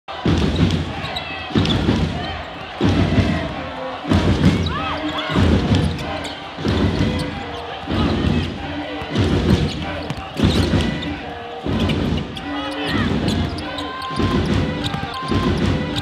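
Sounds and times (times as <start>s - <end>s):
arena crowd noise: 0.0s - 16.0s
sneakers squeaking: 0.5s - 2.8s, 4.0s - 16.0s
basketball bouncing on floor: 9.0s - 11.1s.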